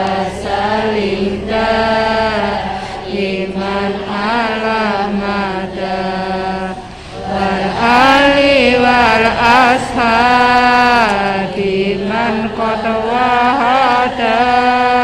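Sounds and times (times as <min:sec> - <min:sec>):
sustained accompaniment tone: 0:00.0 - 0:15.0.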